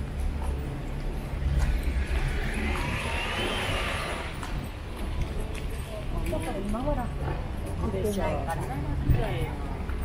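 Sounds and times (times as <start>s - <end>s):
street traffic rumble: 0.0s - 10.0s
faint high whine: 1.2s - 5.2s.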